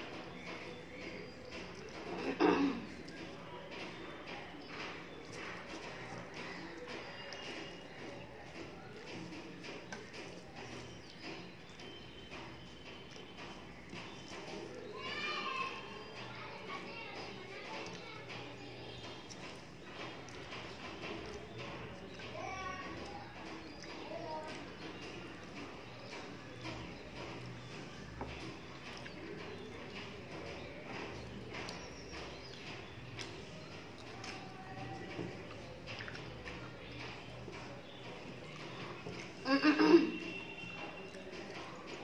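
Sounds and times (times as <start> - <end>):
chewing and lip-smacking: 0.0 - 2.2, 2.8 - 14.9, 15.6 - 39.4.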